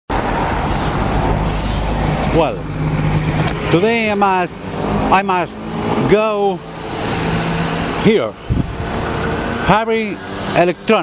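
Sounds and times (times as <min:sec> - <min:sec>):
bus driving past: 0:00.1 - 0:11.0.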